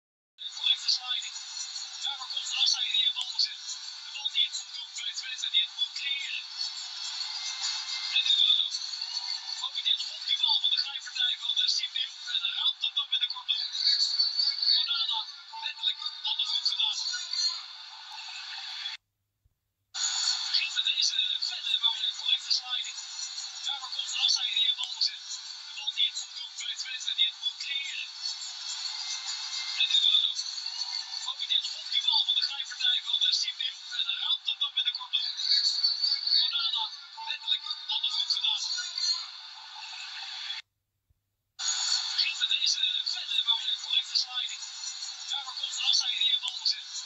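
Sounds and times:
tinny football broadcast: 0:00.5 - 0:19.0, 0:20.0 - 0:40.6, 0:41.6 - 0:47.0.

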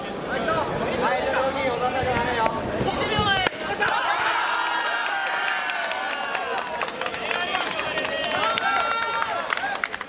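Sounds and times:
people calling out and talking: 0:00.0 - 0:09.8
scattered claps: 0:03.2 - 0:10.0.

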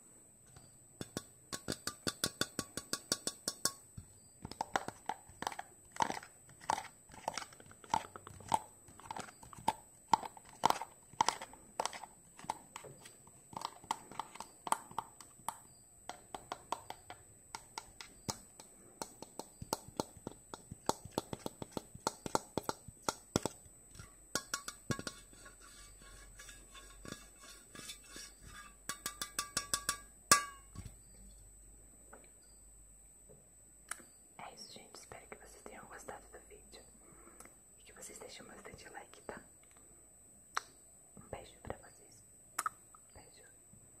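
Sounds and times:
faint high-pitched whine: 0:00.0 - 0:44.0
person whispering: 0:34.4 - 0:36.9, 0:37.8 - 0:39.5, 0:41.2 - 0:42.2, 0:43.1 - 0:43.6
tongue clicks: 0:40.5 - 0:40.8, 0:42.6 - 0:43.2
lip-smack kiss sounds: 0:42.6 - 0:42.8
lip smacks: 0:42.6 - 0:43.1.

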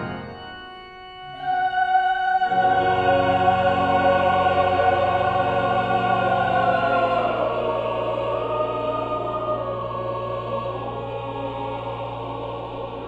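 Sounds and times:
choir singing: 0:00.0 - 0:13.0
organ chords: 0:00.0 - 0:13.0.

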